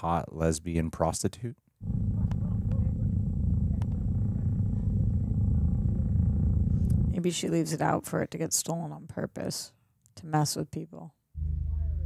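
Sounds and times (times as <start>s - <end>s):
low rumbling drone: 1.8s - 7.2s, 11.4s - 12.0s.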